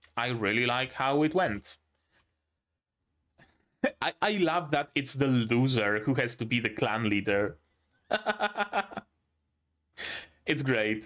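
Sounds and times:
man speaking: 0:00.0 - 0:01.8, 0:03.8 - 0:07.6, 0:10.4 - 0:11.0.

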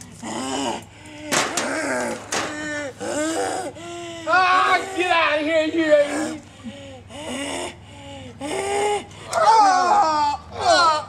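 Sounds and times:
man making drawn-out vocal sounds: 0:00.3 - 0:11.0.

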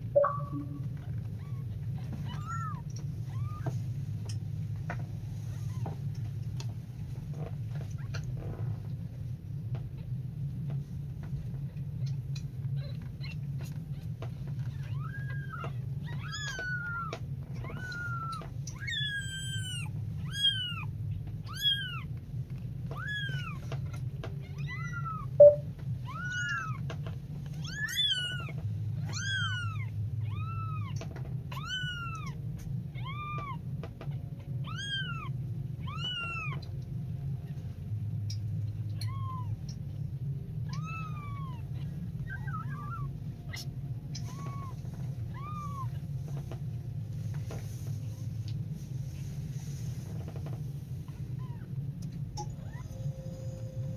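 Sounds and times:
steady low hum: 0:00.0 - 0:53.9
kittens mewing: 0:12.1 - 0:22.2, 0:22.9 - 0:26.9, 0:27.6 - 0:36.7, 0:38.8 - 0:39.8, 0:40.6 - 0:46.2.

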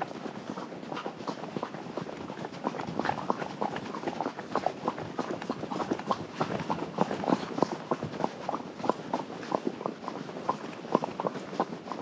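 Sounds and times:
horse hooves on gravel: 0:00.0 - 0:12.0.

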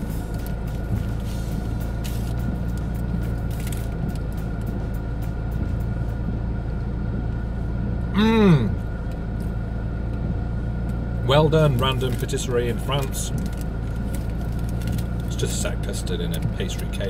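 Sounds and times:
car engine idling: 0:00.0 - 0:17.0
paper wrapper crinkling: 0:03.5 - 0:04.0, 0:11.7 - 0:15.6.

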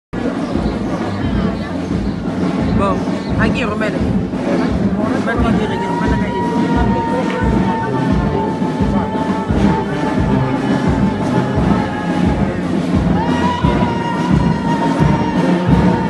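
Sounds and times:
bass drum beat: 0:00.2 - 0:16.0
brass band music: 0:00.2 - 0:16.0.

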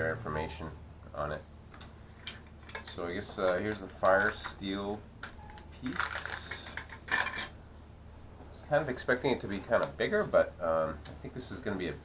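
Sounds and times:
metallic handling and rustling: 0:01.7 - 0:07.6.

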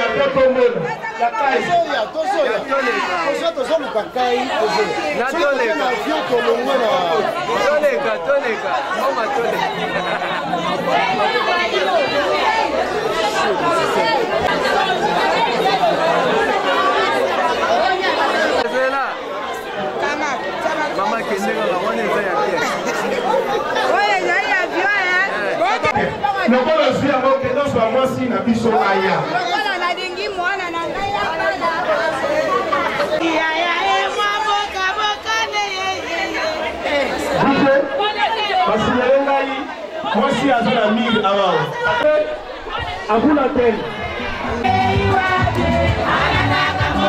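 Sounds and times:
crowd chatter: 0:00.0 - 0:47.0.

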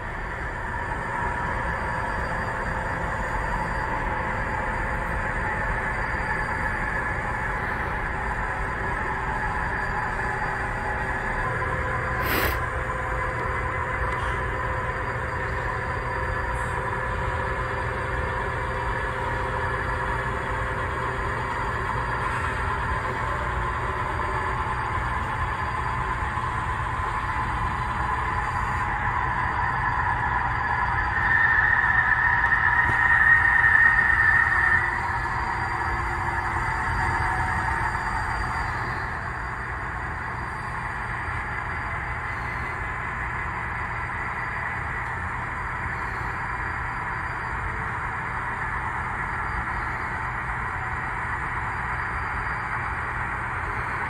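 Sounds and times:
model train running hum: 0:00.0 - 0:54.0.

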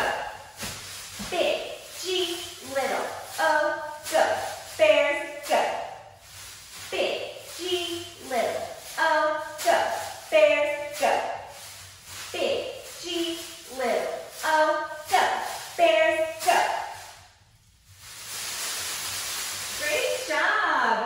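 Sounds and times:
woman speaking: 0:00.0 - 0:00.3, 0:01.2 - 0:05.9, 0:06.9 - 0:11.4, 0:12.3 - 0:17.0, 0:19.8 - 0:21.0
rustling hiss: 0:00.0 - 0:21.0.

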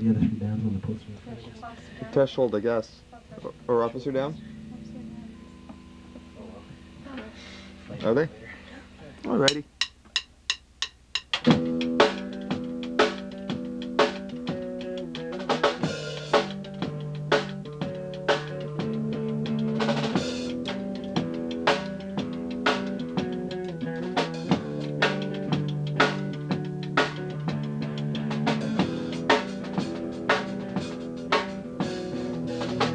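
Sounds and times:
rock band playing: 0:11.2 - 0:32.9.

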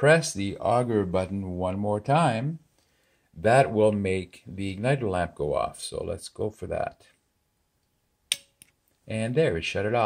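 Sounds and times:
sharp click: 0:08.3 - 0:08.8.

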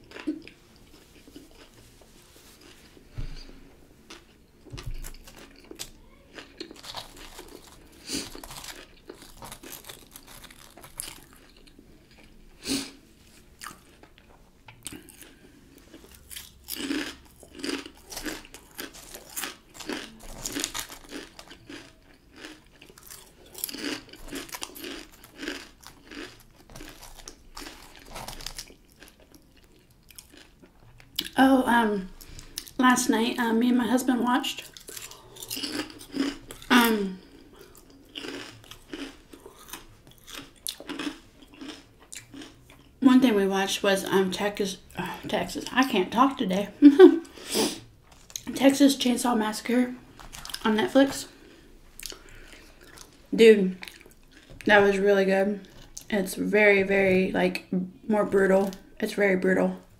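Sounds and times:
chewing crisp potato chips: 0:00.0 - 0:01.9, 0:02.5 - 0:03.0, 0:04.0 - 0:12.4, 0:13.2 - 0:31.4, 0:34.5 - 0:43.0, 0:48.1 - 0:54.7.

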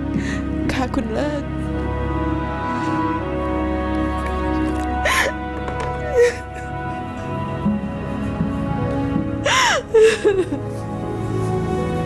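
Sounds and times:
background music: 0:00.0 - 0:12.0
woman crying and sobbing: 0:04.8 - 0:07.7, 0:09.3 - 0:11.0.

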